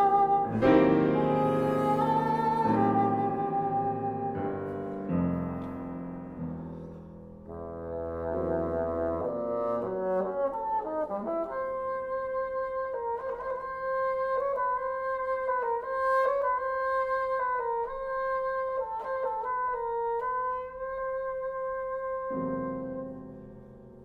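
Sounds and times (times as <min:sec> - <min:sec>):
piano chords: 0:00.0 - 0:12.5
bassoon playing: 0:00.0 - 0:23.6.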